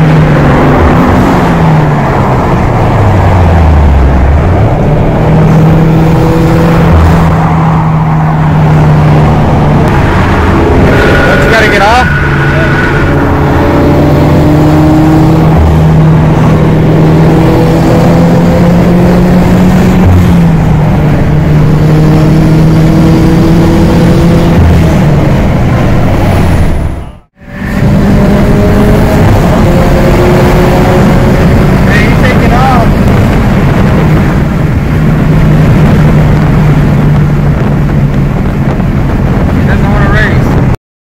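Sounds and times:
car engine droning at highway speed: 0.0 - 40.8
road and wind noise: 0.0 - 40.8.

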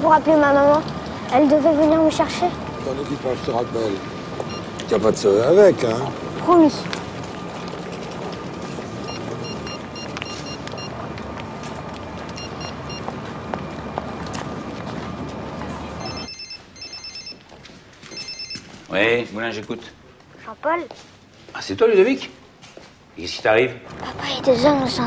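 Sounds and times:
phone ringtone trilling beeps: 9.1 - 10.9, 12.4 - 13.0, 16.0 - 17.4, 18.1 - 18.6.

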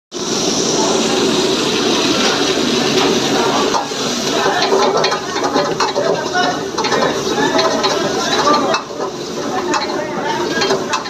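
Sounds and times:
aromatics frying: 0.1 - 11.0
gas wok burner running: 0.1 - 11.0
metal ladle stirring in wok: 3.7 - 11.0.

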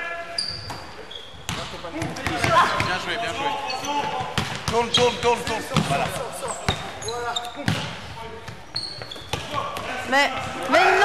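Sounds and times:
sneaker squeaks: 0.3 - 9.8
basketball bouncing on wooden floor: 4.0 - 6.9.

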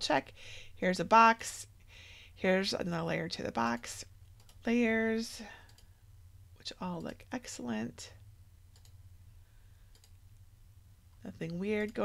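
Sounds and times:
low steady hum: 0.0 - 12.0
faint computer mouse clicks: 8.7 - 9.0, 9.9 - 10.4.

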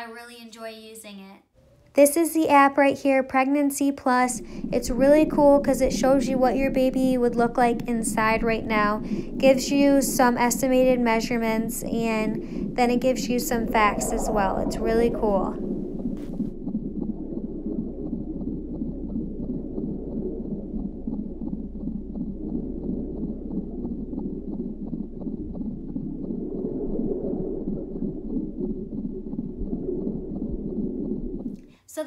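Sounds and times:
muffled womb-like ambient sound: 3.1 - 31.5.

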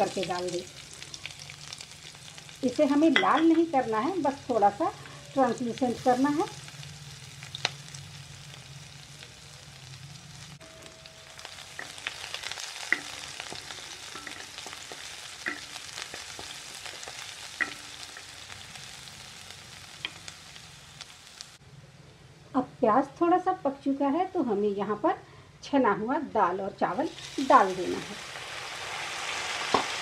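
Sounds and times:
onion sizzling in hot fat: 0.0 - 21.6, 26.8 - 30.0.

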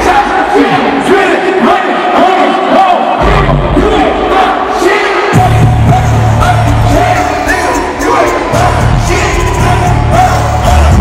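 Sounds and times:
crowd shouting along: 0.0 - 11.0
hip-hop track: 0.0 - 11.0
deep bass: 5.4 - 11.0.

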